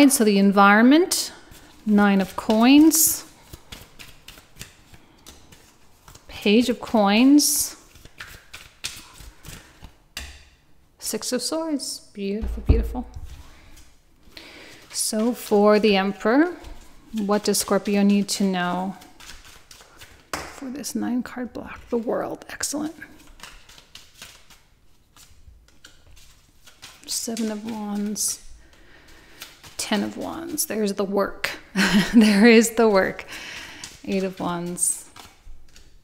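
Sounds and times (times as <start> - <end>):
cards clicking and tapping: 2.4 - 6.3, 7.9 - 10.6, 19.1 - 20.6, 23.2 - 30.6, 33.5 - 36.0.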